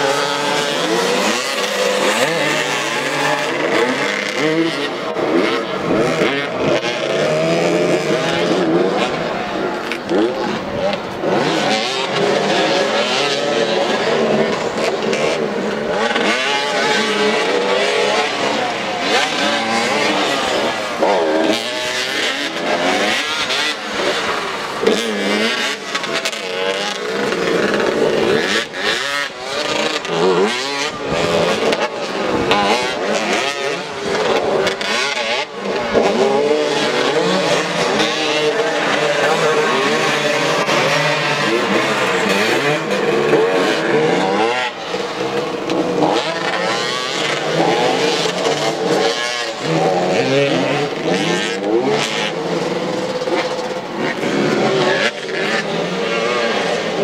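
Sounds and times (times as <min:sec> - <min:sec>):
motorcycle engines revving: 0:00.0 - 0:57.0.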